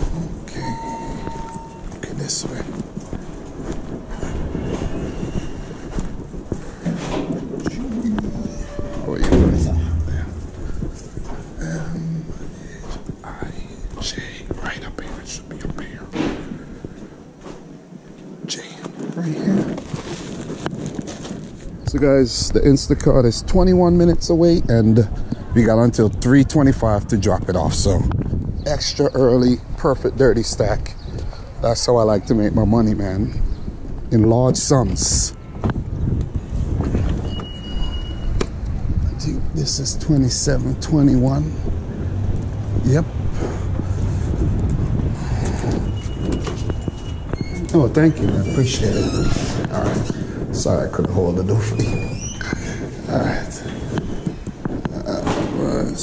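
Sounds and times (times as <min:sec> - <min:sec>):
handling noise: 0:00.0 - 0:21.9, 0:44.2 - 0:55.7
city street rumble: 0:00.0 - 0:56.0
thin high beep: 0:00.5 - 0:01.9
footsteps on carpet: 0:01.8 - 0:07.5, 0:09.9 - 0:11.6.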